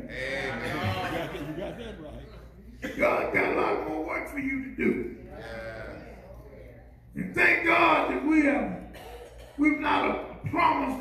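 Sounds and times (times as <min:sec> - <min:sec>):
loud spoken word: 0:09.6 - 0:11.0.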